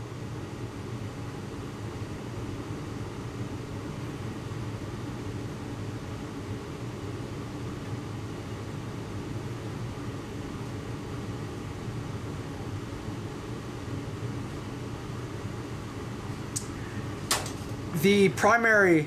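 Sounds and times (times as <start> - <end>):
cabinet blower humming: 8.9 - 19.0.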